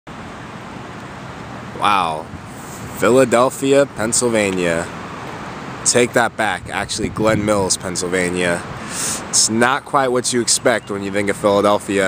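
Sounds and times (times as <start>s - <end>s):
outdoor background hiss: 0.1s - 12.0s
man saying wow: 1.8s - 2.3s.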